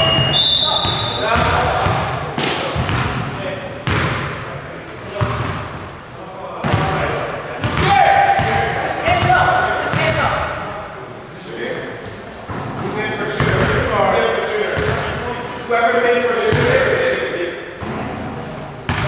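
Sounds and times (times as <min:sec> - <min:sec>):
players calling and talking: 0:00.0 - 0:19.0.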